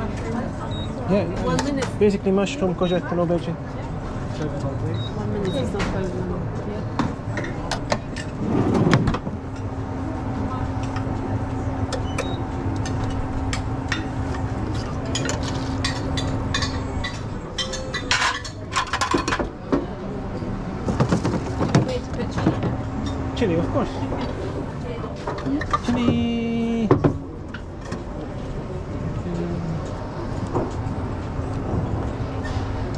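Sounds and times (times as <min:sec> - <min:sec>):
steady hum: 0:00.0 - 0:32.9.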